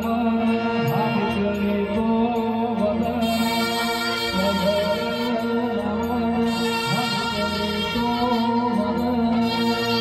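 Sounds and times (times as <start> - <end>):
brass band music: 3.2 - 5.6, 9.4 - 10.0
saxophone melody: 3.2 - 10.0.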